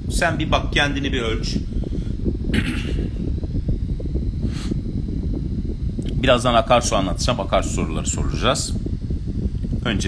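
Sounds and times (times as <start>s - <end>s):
low rumbling: 0.0s - 10.0s.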